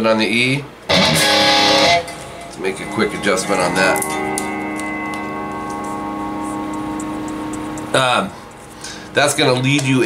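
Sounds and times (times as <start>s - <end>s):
electric guitar chord ringing: 0.9s - 9.7s.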